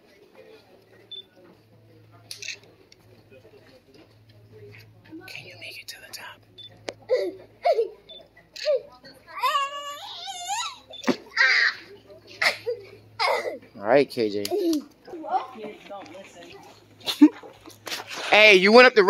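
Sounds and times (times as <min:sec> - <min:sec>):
child squealing: 0:09.4 - 0:11.8
child grunting and yelping: 0:11.4 - 0:11.8.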